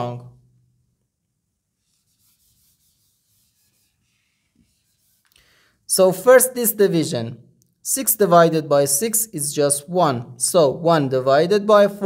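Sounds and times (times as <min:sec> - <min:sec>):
eraser rubbing on whiteboard: 0:01.8 - 0:05.3.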